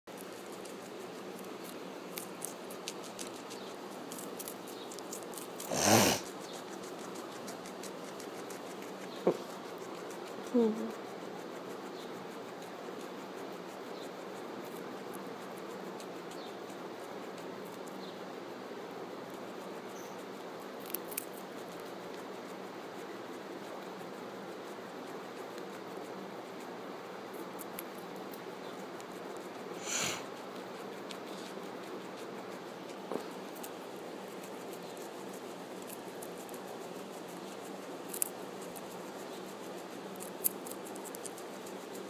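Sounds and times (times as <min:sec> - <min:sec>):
guinea pig crunching carrot: 0:00.1 - 0:42.0.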